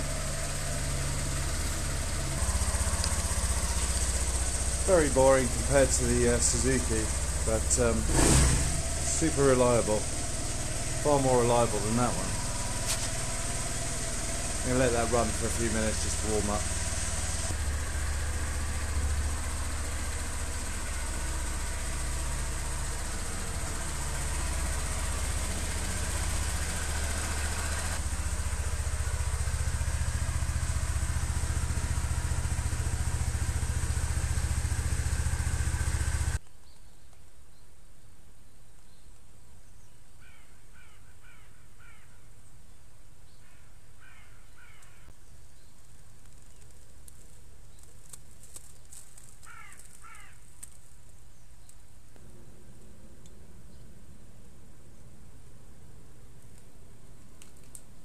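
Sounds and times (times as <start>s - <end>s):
scooter engine idling: 0.0s - 36.4s, 44.0s - 51.4s
bird calling: 40.2s - 42.3s, 43.3s - 45.8s, 49.4s - 50.6s.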